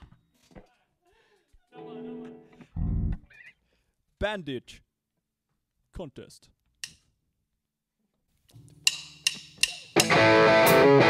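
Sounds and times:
drumsticks clicking together: 0:08.8 - 0:10.2
band playing: 0:10.0 - 0:11.0.

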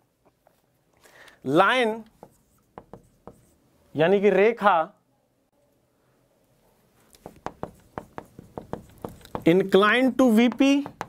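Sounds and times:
marker pen writing on whiteboard: 0:02.0 - 0:03.6, 0:07.1 - 0:11.0.

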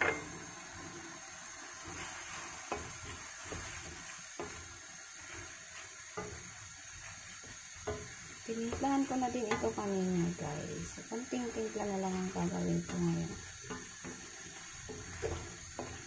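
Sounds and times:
meat sizzling in a wok: 0:00.0 - 0:16.0
utensil tapping and scraping: 0:01.8 - 0:10.0, 0:11.4 - 0:16.0.

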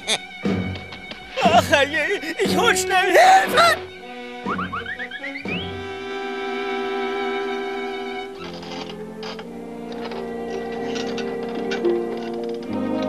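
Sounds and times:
cartoon music with bowed strings: 0:00.0 - 0:13.0.

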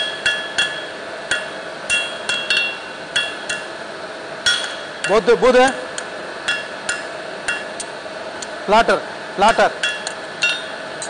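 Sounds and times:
hammer striking steel on anvil: 0:00.0 - 0:03.8, 0:04.4 - 0:05.3, 0:05.9 - 0:07.9, 0:09.5 - 0:10.8.

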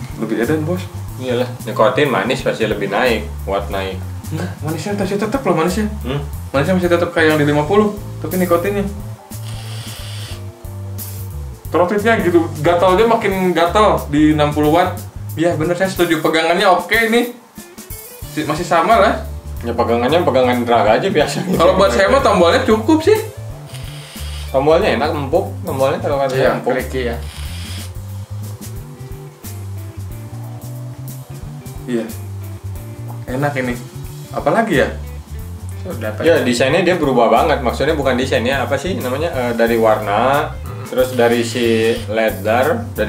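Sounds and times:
background music with bass: 0:00.0 - 0:43.0
vape hiss: 0:09.0 - 0:11.6, 0:18.0 - 0:18.7, 0:23.4 - 0:24.9, 0:27.1 - 0:29.6, 0:41.0 - 0:42.4
breathy hiss of vapour exhale: 0:09.3 - 0:11.3, 0:23.7 - 0:24.6.

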